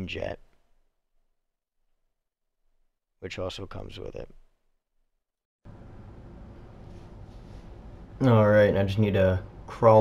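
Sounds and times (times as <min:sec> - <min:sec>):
faint room hiss and hum: 0:05.7 - 0:10.0.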